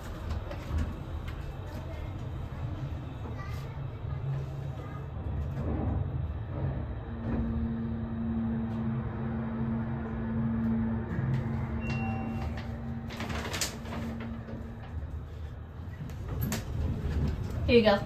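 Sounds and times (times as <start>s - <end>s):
elevator hum: 0.0s - 18.0s
elevator doors sliding open: 5.2s - 18.0s
droning tone: 5.6s - 16.0s.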